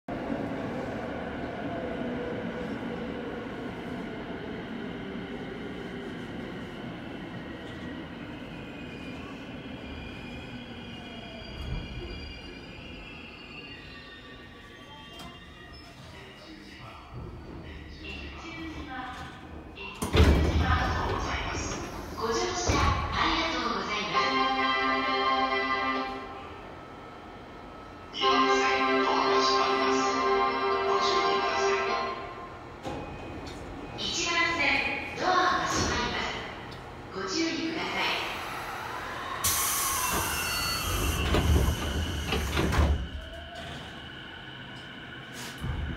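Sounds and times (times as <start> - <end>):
air hiss of train doors: 39.3 - 43.0, 45.3 - 45.9.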